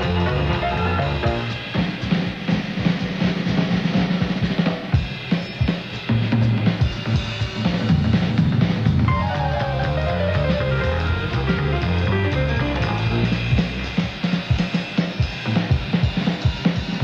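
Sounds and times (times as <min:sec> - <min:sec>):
bass line: 0:00.0 - 0:01.6, 0:09.1 - 0:14.0
jazz band playing: 0:00.0 - 0:02.1, 0:09.1 - 0:14.0
jazz drum solo: 0:00.0 - 0:17.0.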